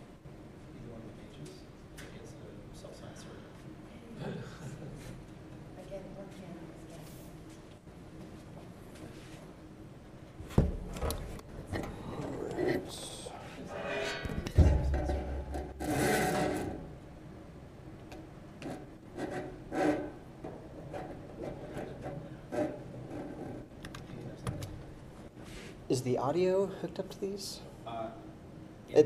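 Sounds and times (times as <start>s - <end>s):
heavy thump: 14.3s - 15.8s.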